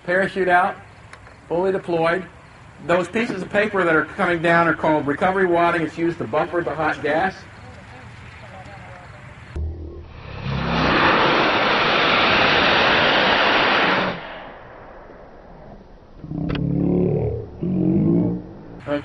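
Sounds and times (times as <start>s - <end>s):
loud steady rushing noise: 10.2s - 15.4s.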